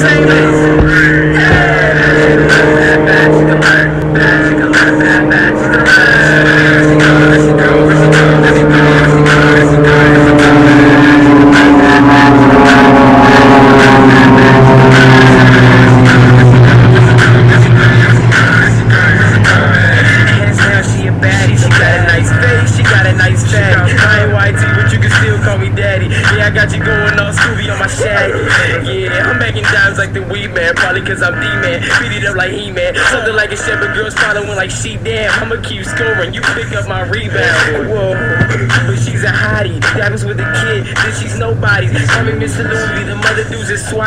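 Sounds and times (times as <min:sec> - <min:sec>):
hip-hop beat: 0:00.0 - 0:44.0
jet aircraft passing overhead: 0:00.0 - 0:44.0.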